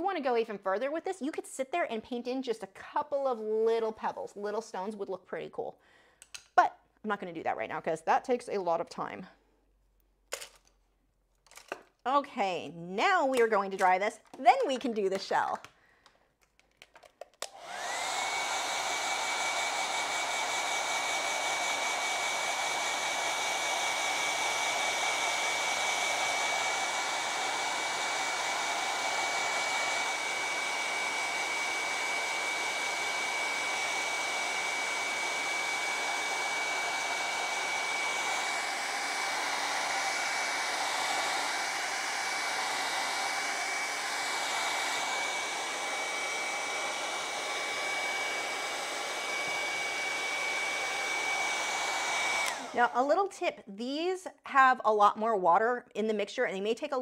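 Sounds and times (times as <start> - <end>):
hair dryer running: 13.0 - 15.6, 17.4 - 53.3.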